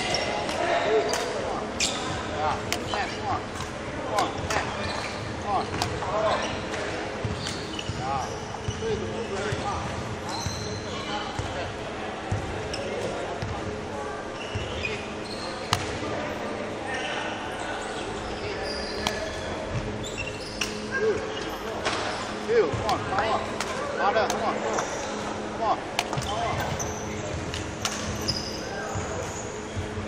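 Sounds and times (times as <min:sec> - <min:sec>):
shoes squeaking on wooden floor: 0:04.2 - 0:11.1.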